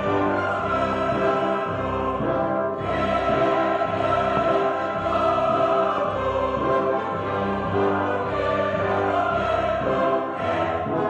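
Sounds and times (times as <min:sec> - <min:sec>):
chorus singing opera: 0:00.0 - 0:11.0.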